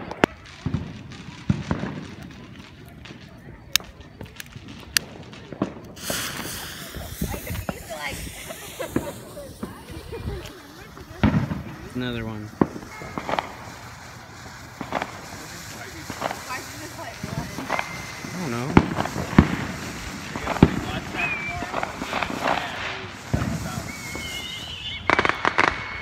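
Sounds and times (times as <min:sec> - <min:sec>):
firecrackers popping and banging: 0:00.0 - 0:26.0
fountain firework hissing: 0:00.0 - 0:26.0.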